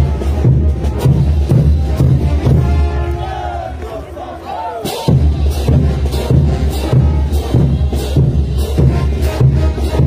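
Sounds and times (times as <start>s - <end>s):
drums and cymbals beat: 0.0s - 10.0s
parade band music: 0.0s - 10.0s
people shouting: 1.8s - 5.7s.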